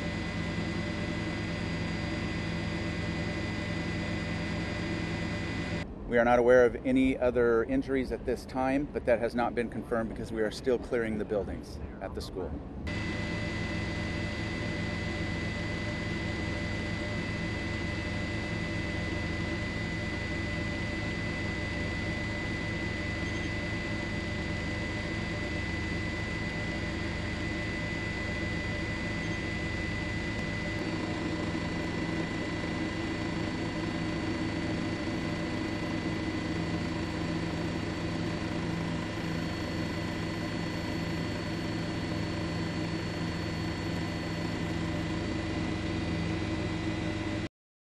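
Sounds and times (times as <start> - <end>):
helicopter engine and rotor drone: 0.0 - 47.5
thin high whine: 0.0 - 47.5.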